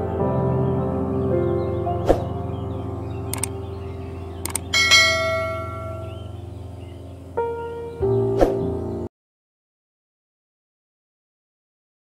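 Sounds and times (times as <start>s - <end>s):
quiet background music: 0.0s - 9.1s
short mouse clicks: 3.3s - 3.5s, 4.4s - 4.7s
notification bell ding: 4.8s - 6.1s.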